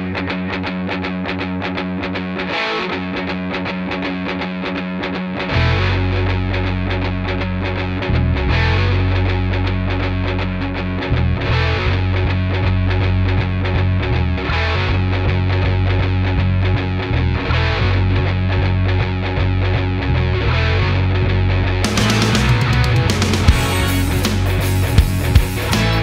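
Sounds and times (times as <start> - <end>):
distorted electric guitar riff: 0.0 - 26.0
hard rock band playing: 0.0 - 26.0.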